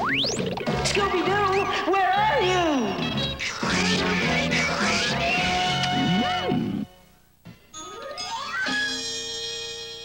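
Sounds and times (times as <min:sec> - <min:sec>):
cartoon music: 0:03.6 - 0:06.9, 0:08.2 - 0:09.1.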